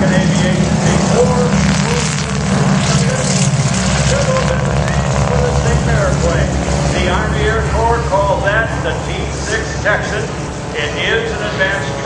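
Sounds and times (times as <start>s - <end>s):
radial aircraft engine rumbling: 0.0s - 12.0s.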